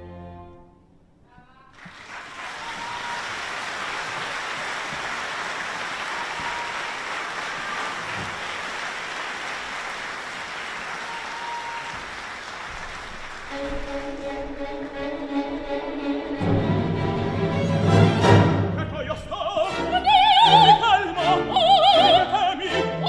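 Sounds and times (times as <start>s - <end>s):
audience applauding: 1.7s - 15.6s
orchestra playing: 13.2s - 23.0s.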